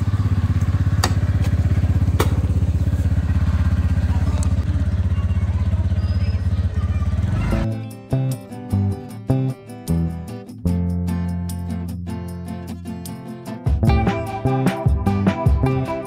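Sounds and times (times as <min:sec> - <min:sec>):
motor scooter engine idling: 0:00.0 - 0:07.7
music: 0:06.8 - 0:16.0.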